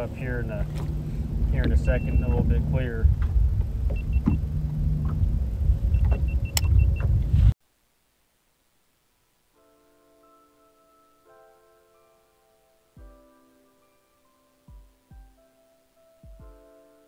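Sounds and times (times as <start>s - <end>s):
loud low rumble: 0.0s - 7.5s
high electronic beeps: 1.9s - 2.4s, 3.9s - 4.4s
soft piano background music: 9.6s - 17.0s.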